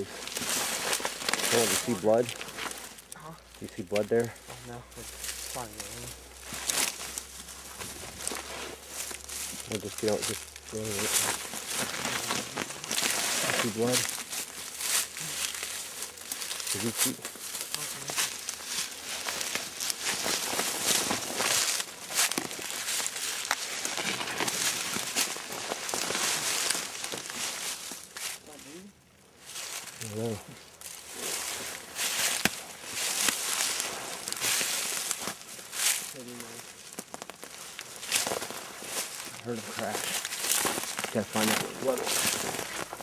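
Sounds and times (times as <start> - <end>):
branches brushing past: 0.0 - 43.0
footsteps in dry leaves: 0.0 - 43.0.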